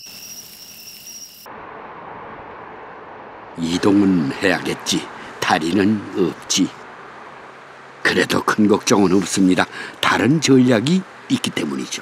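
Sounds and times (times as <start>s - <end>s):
city traffic hum: 0.0s - 12.0s
night insects calling: 0.0s - 12.0s.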